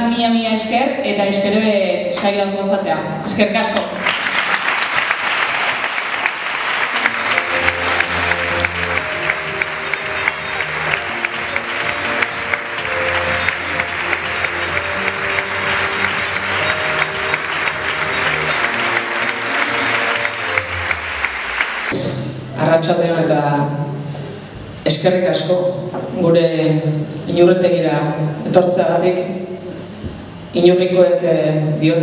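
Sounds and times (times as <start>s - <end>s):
audience applauding: 4.0s - 22.0s.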